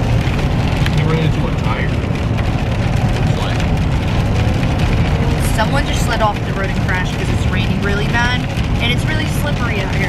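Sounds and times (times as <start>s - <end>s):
heavy rain hitting a car: 0.0s - 10.0s
road and tyre rumble: 0.0s - 10.0s.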